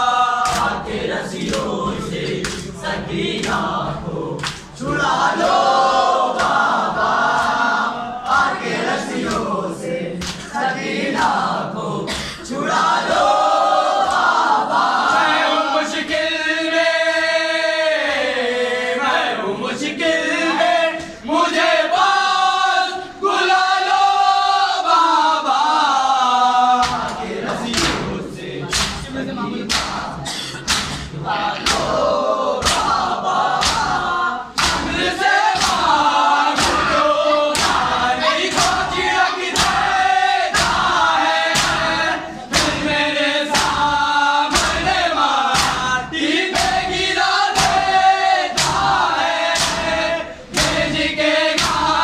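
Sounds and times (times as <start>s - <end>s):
men chanting in chorus: 0.0s - 52.0s
hands slapping chest: 1.4s - 1.7s, 2.4s - 2.7s, 4.4s - 5.6s, 6.3s - 6.7s, 10.2s - 10.5s, 26.8s - 28.1s, 28.7s - 29.1s, 30.7s - 32.0s, 32.6s - 33.0s, 33.6s - 34.0s, 34.6s - 40.9s, 41.5s - 42.8s, 43.5s - 43.9s, 44.5s - 45.9s, 46.5s - 52.0s.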